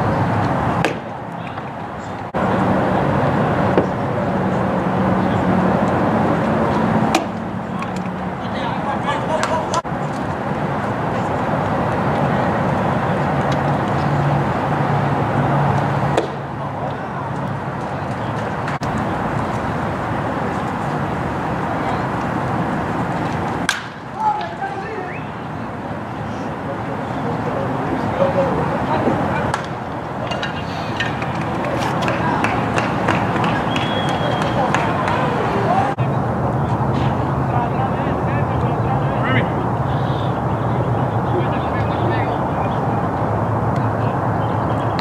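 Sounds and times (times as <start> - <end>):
crowd noise: 0.0 - 45.0
crowd voices rising: 0.0 - 45.0
baseball bat cracking ball: 0.8 - 1.7, 7.1 - 8.1, 16.1 - 16.5, 23.6 - 24.6, 29.5 - 35.2.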